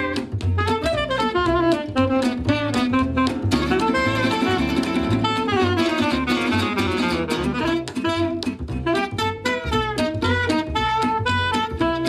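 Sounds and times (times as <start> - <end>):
acoustic guitars: 0.0 - 12.0
tenor saxophone melody: 0.0 - 12.0
upright bass: 0.0 - 12.0.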